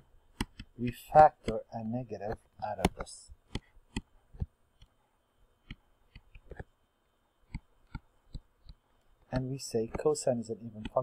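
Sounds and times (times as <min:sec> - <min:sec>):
stylus tapping on tablet: 0:00.3 - 0:01.6, 0:02.2 - 0:05.0, 0:05.6 - 0:06.7, 0:07.4 - 0:10.1.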